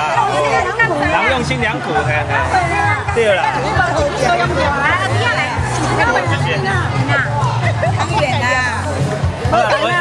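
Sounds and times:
women chattering: 0.0s - 10.0s.

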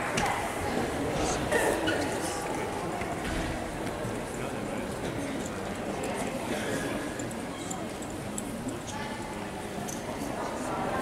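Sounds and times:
large hall background noise: 0.0s - 11.0s
murmur of voices: 0.0s - 11.0s.

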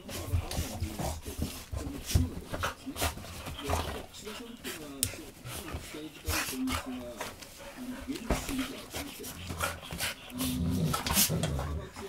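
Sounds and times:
dogs scuffling: 0.0s - 12.0s.

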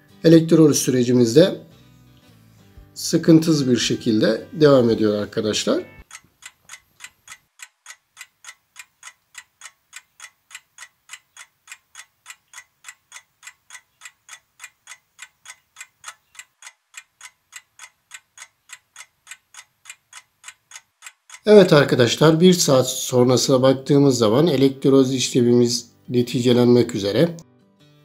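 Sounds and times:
stopwatch ticking: 4.0s - 26.7s.

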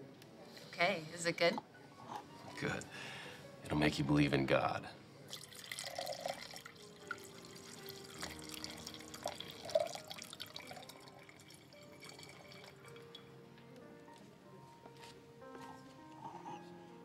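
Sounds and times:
wine pouring into a glass: 5.3s - 13.3s.

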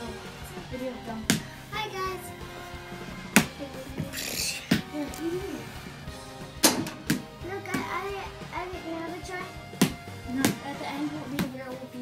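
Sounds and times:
background music: 0.0s - 12.0s
basketball thumps: 4.7s - 4.9s, 6.6s - 8.0s, 9.8s - 10.6s
children's voices: 7.4s - 9.6s.

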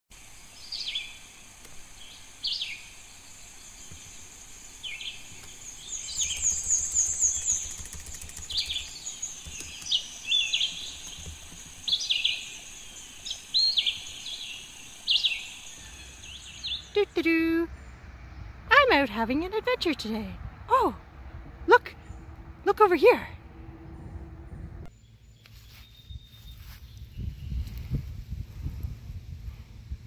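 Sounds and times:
steady high hiss: 0.1s - 7.5s, 8.9s - 16.8s
rapid high bird trill: 4.3s - 17.0s.

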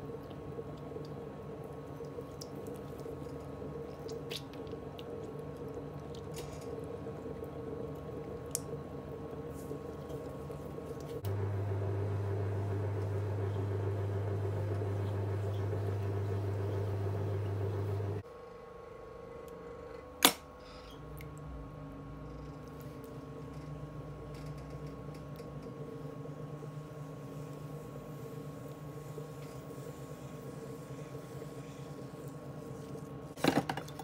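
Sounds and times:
pottery wheel motor hum: 4.8s - 20.1s, 20.7s - 33.4s
louder low hum: 9.0s - 18.2s.

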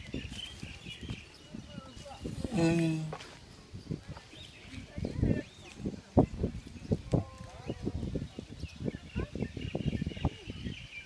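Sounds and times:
birds chirping faintly: 0.0s - 11.0s.

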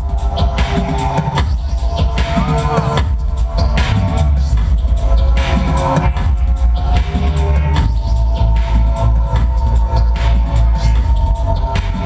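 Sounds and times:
live electronic dub music: 0.0s - 12.0s.

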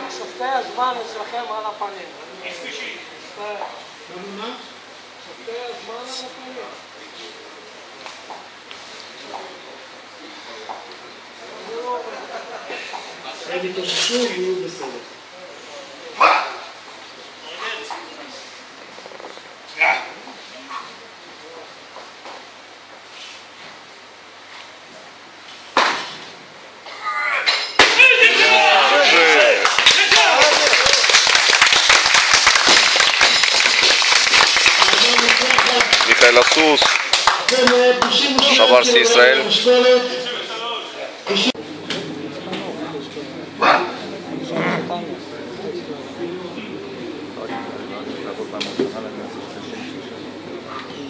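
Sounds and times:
indistinct chatter of people: 0.0s - 22.0s, 37.4s - 51.0s.

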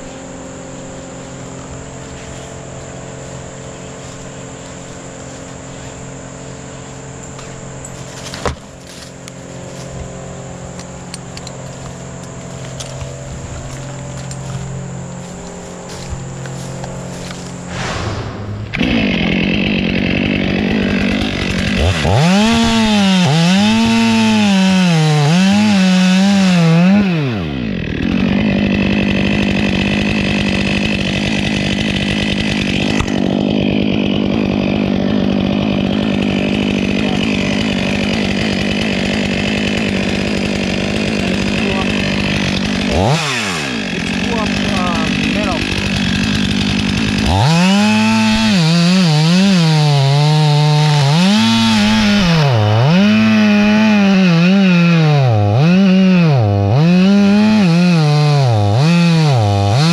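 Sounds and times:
chainsaw cutting through wood: 0.0s - 59.9s
chainsaw engine revving: 7.1s - 59.9s.

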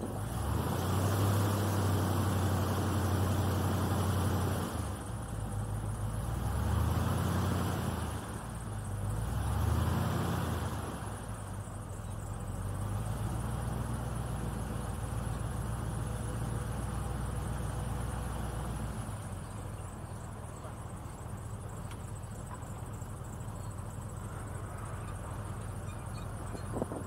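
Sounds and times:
airboat engine and propeller: 0.0s - 27.0s.

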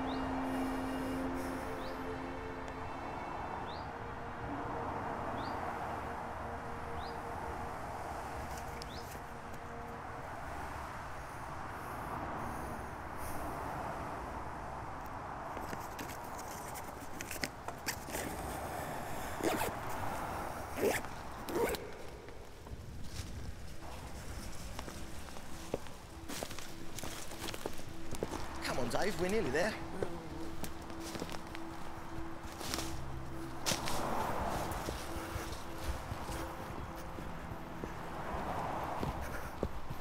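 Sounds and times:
footsteps on tarmac: 15.5s - 18.6s, 20.8s - 40.0s
steady background hiss: 18.5s - 40.0s.

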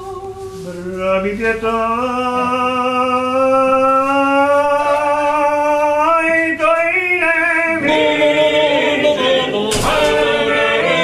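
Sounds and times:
men singing in close harmony: 0.0s - 11.0s.

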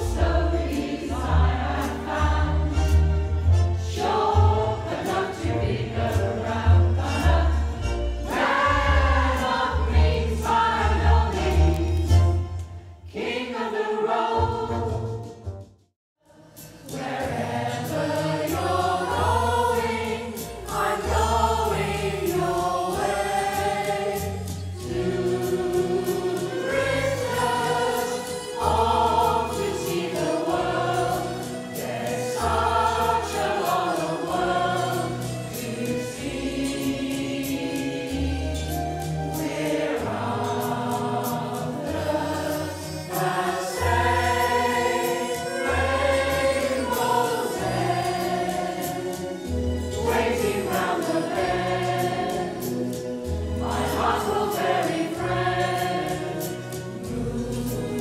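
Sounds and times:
choir singing in harmony: 0.0s - 15.6s, 16.2s - 58.0s.

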